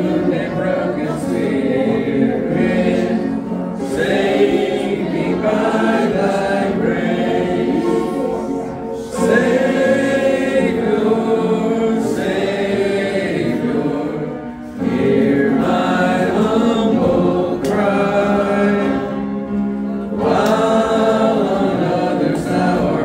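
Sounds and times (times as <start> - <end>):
congregation singing a hymn: 0.0 - 23.0.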